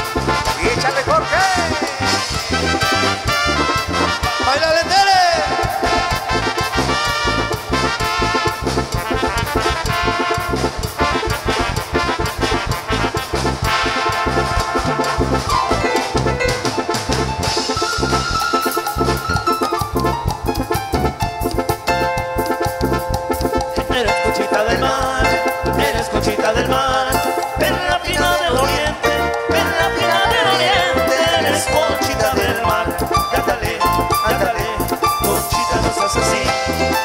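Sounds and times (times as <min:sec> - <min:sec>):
drum kit fast beat: 0:00.0 - 0:37.0
electric bass: 0:00.0 - 0:37.0
keyboard brass-like melody: 0:00.0 - 0:37.0.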